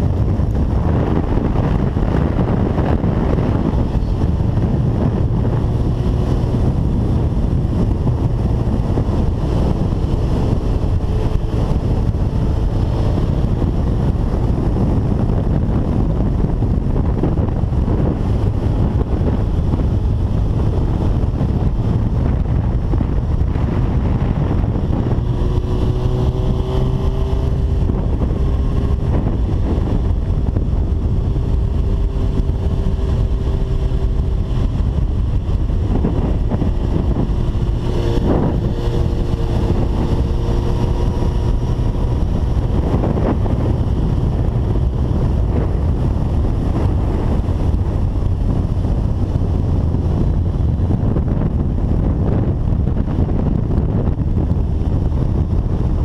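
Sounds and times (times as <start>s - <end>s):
faint motorcycle engine: 0.0s - 56.0s
wind buffeting microphone: 0.0s - 56.0s.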